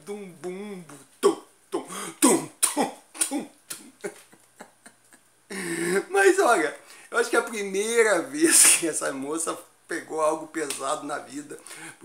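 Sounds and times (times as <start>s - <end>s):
man laughing: 3.2s - 6.4s.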